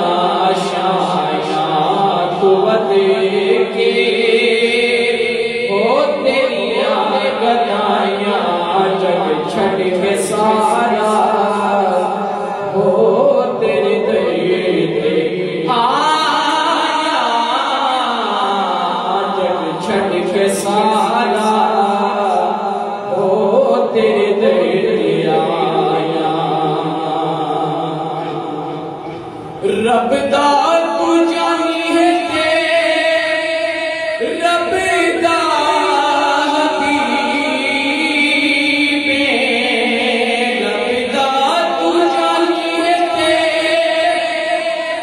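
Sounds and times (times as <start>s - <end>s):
man singing into a microphone: 0.0s - 45.0s.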